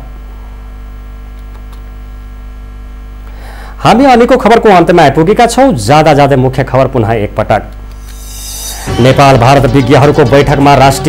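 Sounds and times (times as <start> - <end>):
electrical mains hum: 0.0 - 11.0
man's voice: 8.7 - 11.0.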